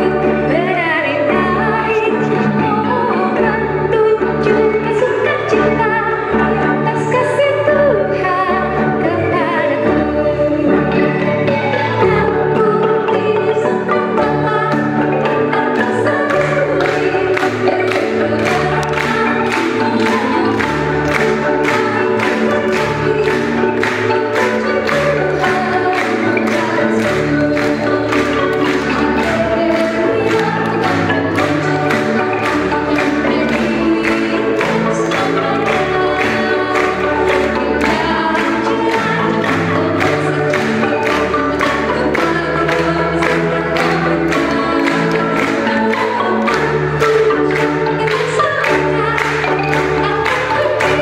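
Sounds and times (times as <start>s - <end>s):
woman singing lead: 0.0s - 51.0s
wooden xylophones struck with mallets: 0.0s - 51.0s
choir singing: 10.8s - 51.0s.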